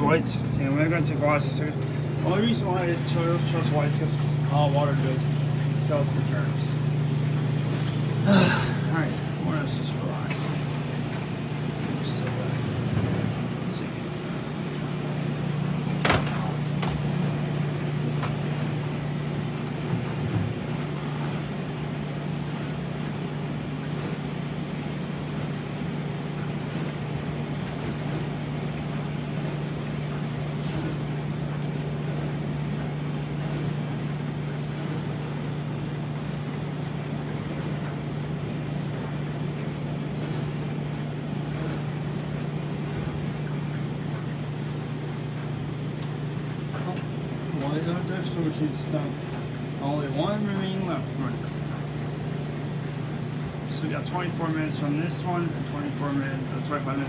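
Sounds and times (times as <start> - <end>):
laundry machines humming: 0.0 - 57.0.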